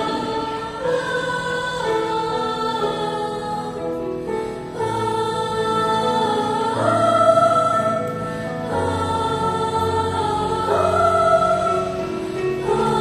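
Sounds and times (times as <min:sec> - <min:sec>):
choir singing chords: 0:00.0 - 0:13.0.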